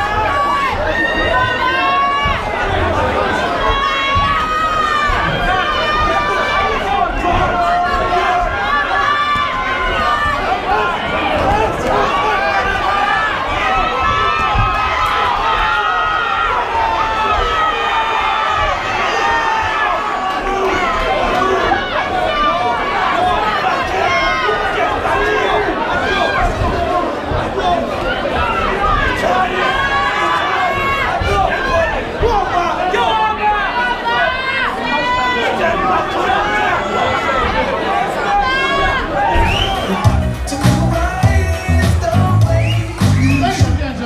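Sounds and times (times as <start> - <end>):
crowd shouting and cheering: 0.0 - 44.0.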